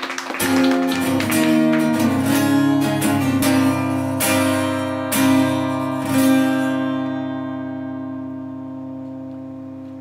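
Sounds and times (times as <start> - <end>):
acoustic guitar chords: 0.0 - 10.0.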